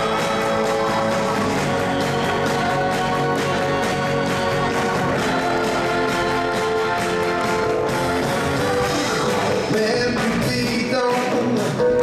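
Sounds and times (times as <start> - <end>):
drums: 0.0 - 12.0
soul band playing: 0.0 - 12.0.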